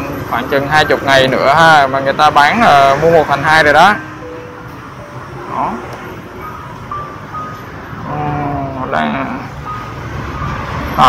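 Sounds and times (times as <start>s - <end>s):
street traffic rumbling: 0.0s - 11.0s.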